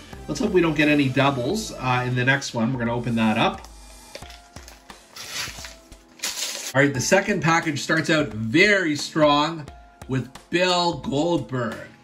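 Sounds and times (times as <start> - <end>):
soft background music: 0.0 - 12.0
wrapper rustling: 4.1 - 6.8.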